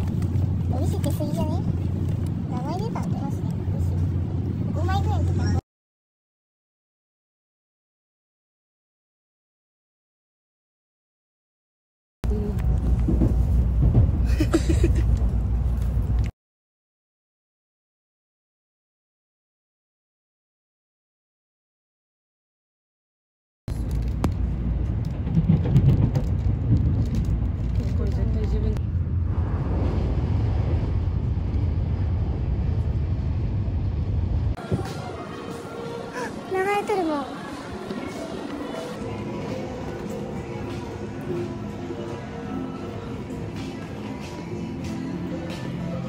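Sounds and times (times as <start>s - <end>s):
train rumble inside carriage: 0.0s - 5.6s, 12.2s - 16.3s, 23.7s - 42.4s.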